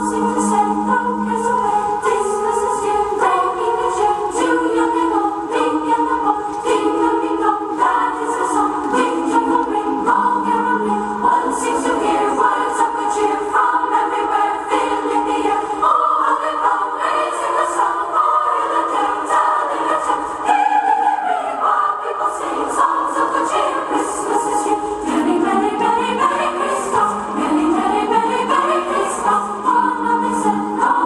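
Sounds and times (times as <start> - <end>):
choir singing chords: 0.0 - 31.0.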